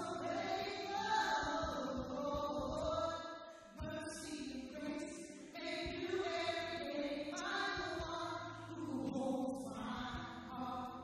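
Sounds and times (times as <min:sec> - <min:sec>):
woman singing worship song: 0:00.0 - 0:11.0.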